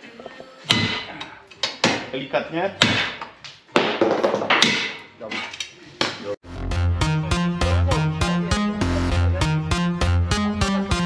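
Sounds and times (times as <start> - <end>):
electronic music: 6.4 - 11.0.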